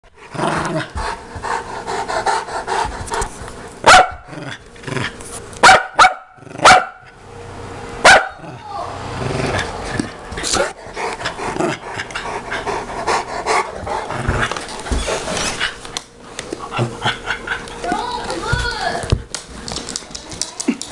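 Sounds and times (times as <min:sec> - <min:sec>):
dogs growling: 0:00.2 - 0:05.2, 0:06.4 - 0:06.7, 0:08.4 - 0:15.9, 0:16.6 - 0:17.8
loud sharp dog barks: 0:03.9 - 0:04.2, 0:05.6 - 0:07.0, 0:08.0 - 0:08.4.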